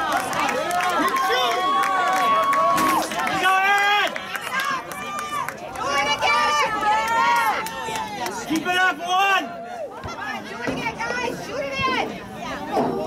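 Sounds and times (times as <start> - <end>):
voices shouting and calling out: 0.0 - 13.0.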